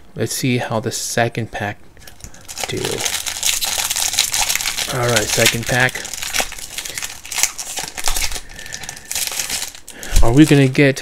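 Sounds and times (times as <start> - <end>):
foil wrapper crinkling: 2.1 - 11.0.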